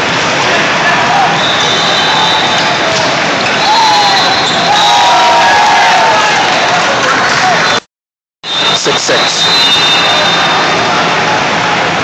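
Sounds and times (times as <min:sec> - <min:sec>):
busy indoor sports hall din: 0:00.0 - 0:12.0.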